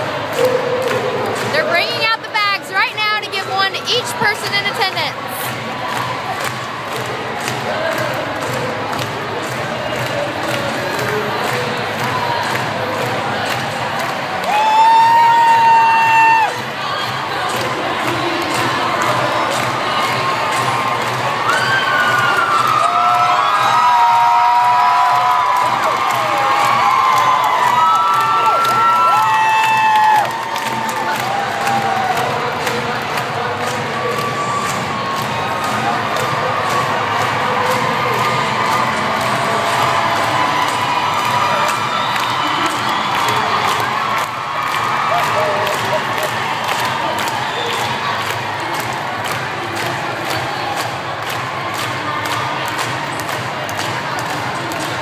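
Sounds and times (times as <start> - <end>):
crowd cheering: 0.0 - 55.0.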